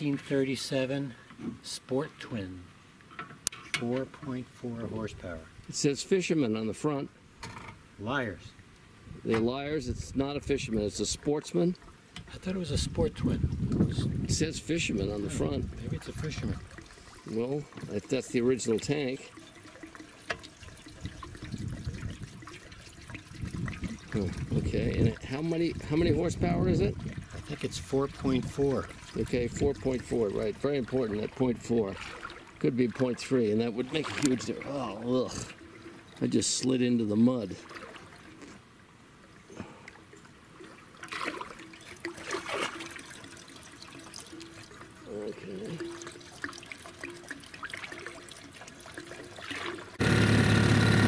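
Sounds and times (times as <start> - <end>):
water splashes: 9.3 - 38.8, 39.6 - 51.0
water sloshing around wading legs: 13.8 - 26.2, 26.8 - 38.8, 39.8 - 50.0
fuel pouring from can: 15.2 - 32.5.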